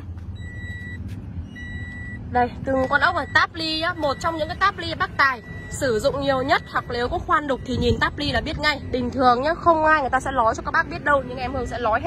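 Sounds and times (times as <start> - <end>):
car door warning chime beeping: 0.3 - 9.1.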